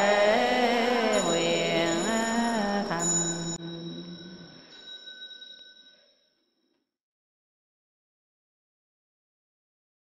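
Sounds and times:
group chanting: 0.0 - 3.6
bell ringing: 0.0 - 6.3.

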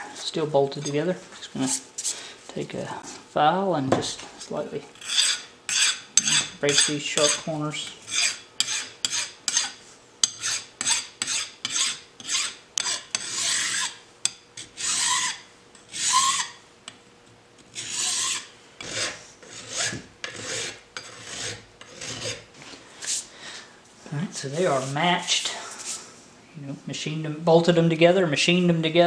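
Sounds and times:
hand file rasping on steel: 5.0 - 7.5, 8.1 - 14.0, 14.6 - 16.6, 17.7 - 22.5.

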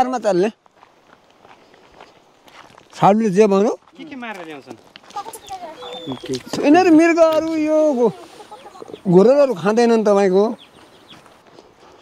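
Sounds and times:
faint footsteps scuffing: 0.0 - 12.0.

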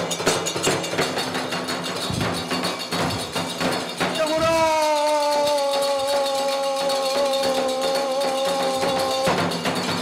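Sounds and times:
hand cymbals and drum: 0.0 - 10.0.

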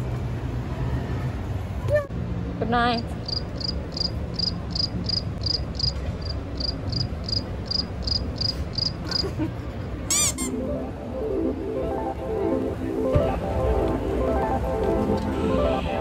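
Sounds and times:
cricket chirps: 3.2 - 9.2
high sweeping sound effect: 10.1 - 16.0.

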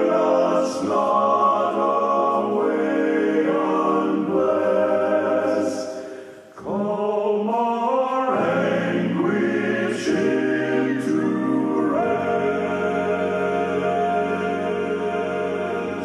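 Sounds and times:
male vocal quartet singing hymn: 0.0 - 16.0.

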